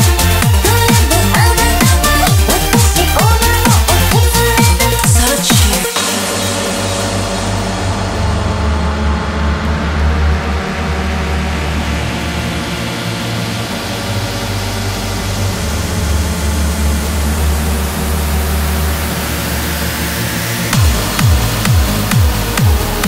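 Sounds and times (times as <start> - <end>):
sustained synth bass and chord: 0.0 - 5.4, 6.0 - 23.0.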